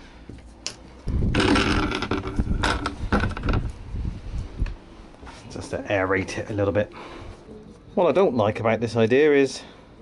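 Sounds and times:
wooden door scraping and rattling: 0:01.2 - 0:03.7.

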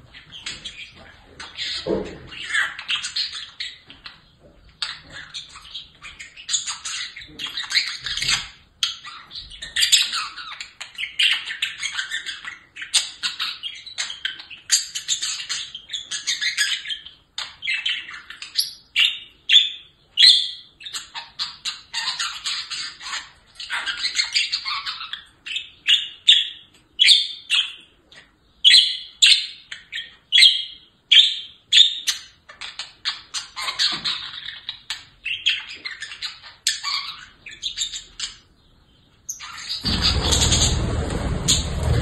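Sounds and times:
budgerigars warbling and chirping: 0:00.1 - 0:42.0.

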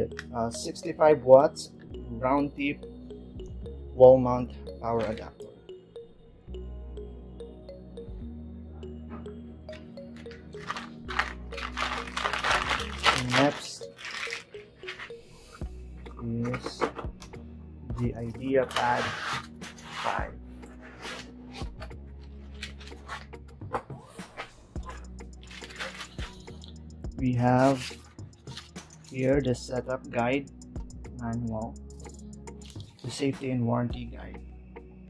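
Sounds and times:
background music with bass line: 0:00.0 - 0:13.9, 0:14.5 - 0:35.0
plastic bag crinkling: 0:10.5 - 0:15.2, 0:25.4 - 0:26.4
foam and cardboard rustling: 0:10.6 - 0:15.2.

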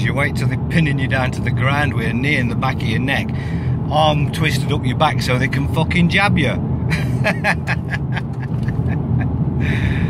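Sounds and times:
car cabin rumble: 0:00.0 - 0:10.0
man laughing: 0:06.9 - 0:10.0.

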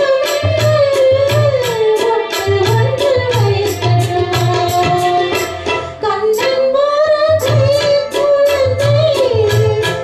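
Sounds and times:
percussion strikes: 0:00.0 - 0:10.0
woman singing: 0:00.0 - 0:10.0.

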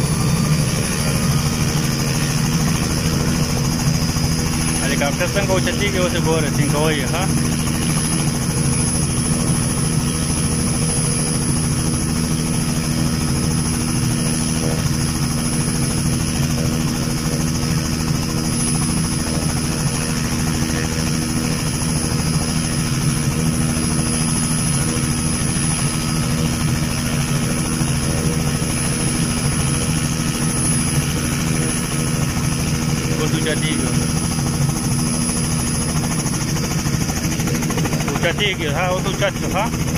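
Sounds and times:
helicopter engine and rotor drone: 0:00.0 - 0:39.9.

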